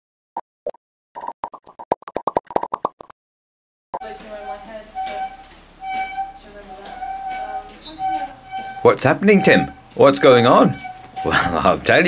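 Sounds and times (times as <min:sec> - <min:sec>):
cartoon popping sounds: 0:00.6 - 0:03.1.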